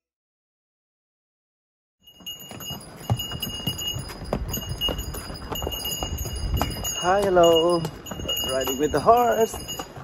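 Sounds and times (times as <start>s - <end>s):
harness bells jingling: 2.0s - 10.0s
hooves clip-clopping on stone: 2.0s - 10.0s.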